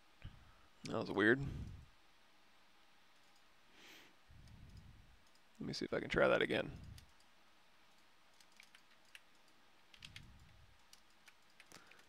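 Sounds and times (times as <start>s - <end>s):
faint keyboard and mouse clicks: 3.1s - 3.5s, 4.4s - 5.7s, 6.7s - 12.0s.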